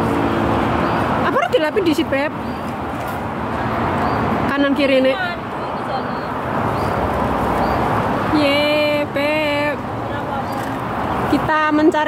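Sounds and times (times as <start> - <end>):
outdoor rushing noise: 0.0 - 11.8.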